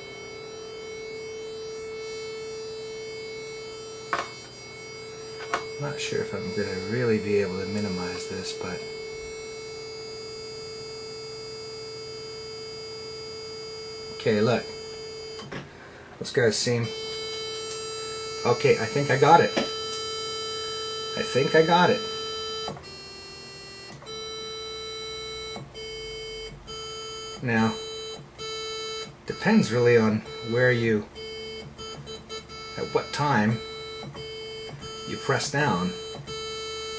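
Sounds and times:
synthesizer held square wave note: 0:00.0 - 0:36.9.

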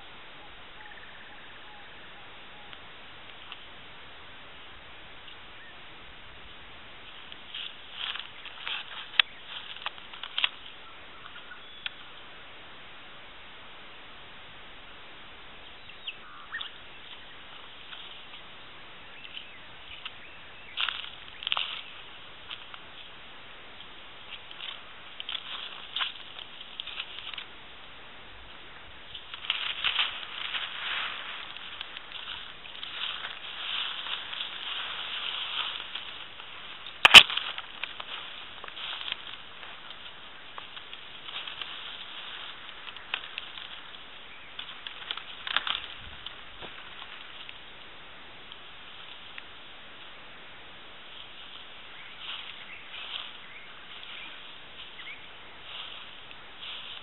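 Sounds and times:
birds calling: 0:00.0 - 0:03.6, 0:05.2 - 0:12.4, 0:15.6 - 0:27.6, 0:28.4 - 0:49.2, 0:51.1 - 0:57.0
faint steady hiss: 0:00.0 - 0:57.0
sharp click: 0:37.0 - 0:37.4.

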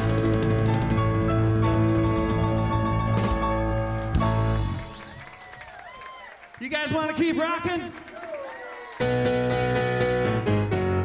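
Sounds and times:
held keyboard chords: 0:00.0 - 0:05.0, 0:09.0 - 0:11.0
rock band playing: 0:00.0 - 0:05.1, 0:09.0 - 0:11.0
bass: 0:00.0 - 0:05.3, 0:09.0 - 0:11.0.

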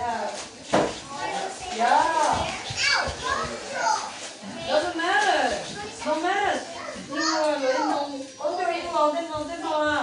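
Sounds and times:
children's voices at play: 0:01.0 - 0:10.0.

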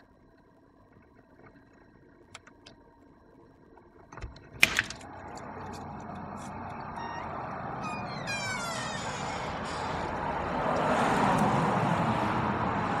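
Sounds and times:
car passing: 0:05.1 - 0:13.0
short falling squeal: 0:06.8 - 0:10.2.

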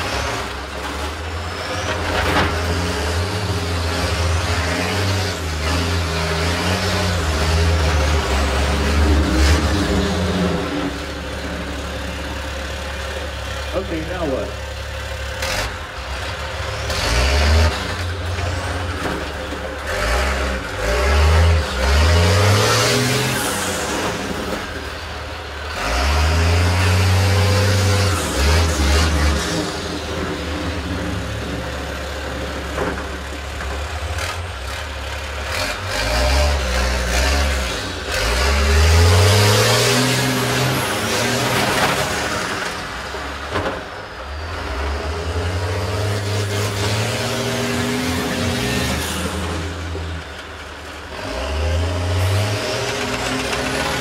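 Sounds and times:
bus engines revving: 0:00.0 - 0:54.0.

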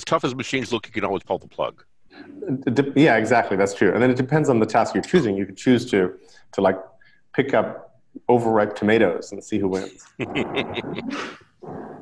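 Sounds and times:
person laughing: 0:04.9 - 0:05.4, 0:09.8 - 0:11.4.

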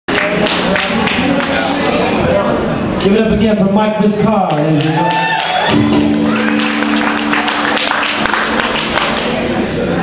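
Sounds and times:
people clapping: 0:00.1 - 0:01.8, 0:04.5 - 0:09.7
crowd talking: 0:00.1 - 0:10.0.

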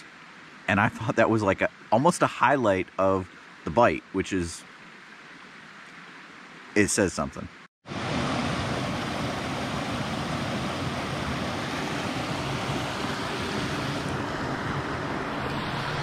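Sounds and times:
water rushing over rocks: 0:00.0 - 0:07.2, 0:07.9 - 0:16.0.

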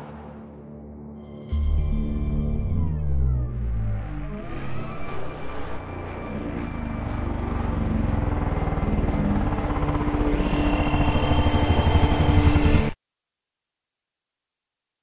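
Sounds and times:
high whine: 0:01.7 - 0:13.0.

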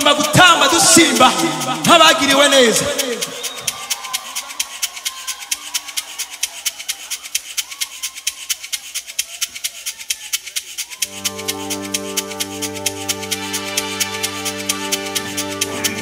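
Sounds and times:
shaker ticking rhythm: 0:00.0 - 0:16.0
held keyboard chord: 0:11.0 - 0:16.0.

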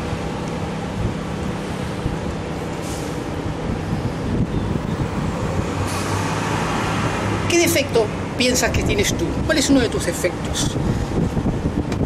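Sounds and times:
city road traffic: 0:00.0 - 0:12.0.

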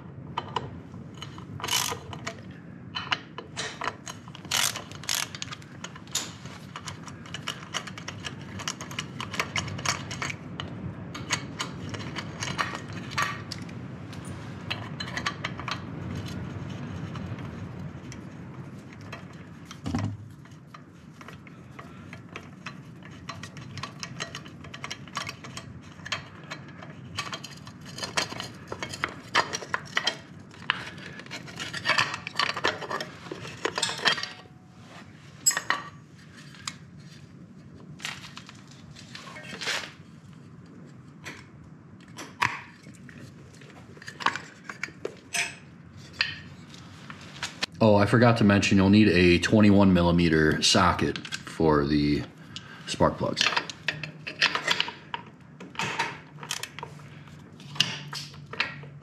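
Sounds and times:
ratchet wrench clicking: 0:04.5 - 0:05.4.

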